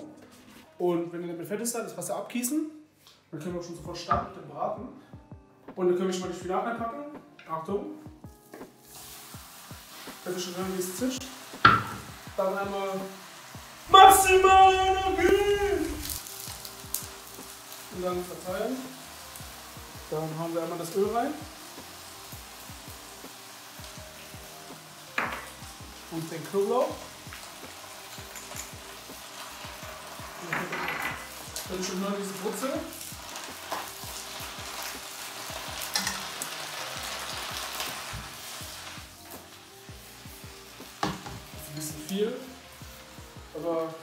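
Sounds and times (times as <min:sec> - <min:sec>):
vegetables sizzling in hot oil: 0:08.3 - 0:44.0.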